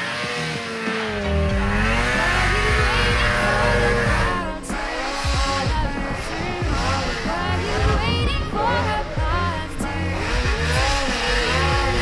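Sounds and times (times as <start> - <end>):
snowmobile engine revving: 0.0 - 12.0.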